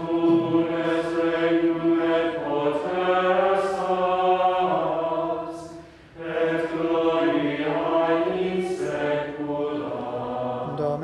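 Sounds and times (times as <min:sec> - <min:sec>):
voices chanting in unison: 0:00.0 - 0:11.0.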